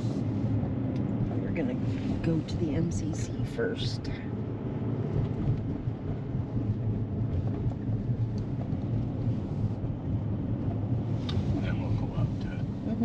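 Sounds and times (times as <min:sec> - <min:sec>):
road and tyre rumble in car: 0:00.0 - 0:13.0.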